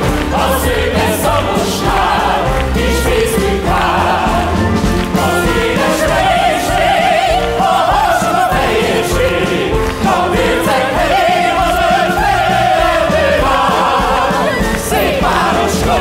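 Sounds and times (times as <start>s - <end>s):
orchestra: 0.0s - 16.0s
soloists singing in chorus: 0.0s - 16.0s.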